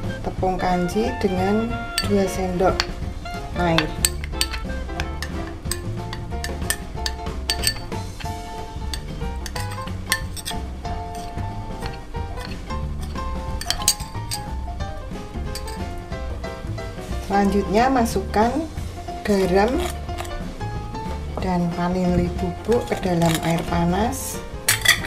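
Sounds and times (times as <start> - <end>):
background music: 0.0 - 25.0
metal spoon clinking glass bowl: 2.0 - 2.2, 3.7 - 14.6, 15.5 - 15.9, 19.4 - 20.4, 22.6 - 23.8, 24.7 - 25.0.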